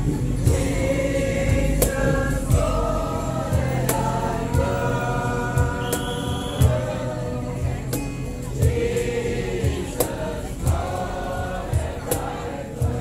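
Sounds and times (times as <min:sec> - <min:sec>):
acoustic guitars: 0:00.0 - 0:13.0
mixed choir singing a carol: 0:00.0 - 0:13.0
steady low beat: 0:00.0 - 0:13.0.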